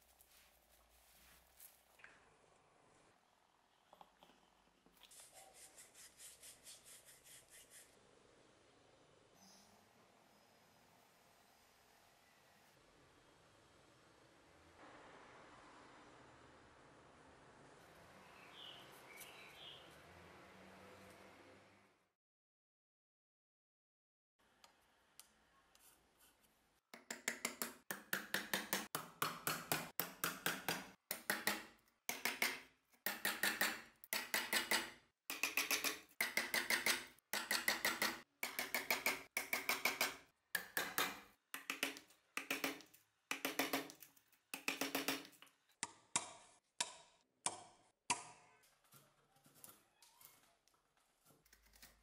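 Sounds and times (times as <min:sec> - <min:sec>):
mallet striking chisel into wood: 0:27.0 - 0:43.9.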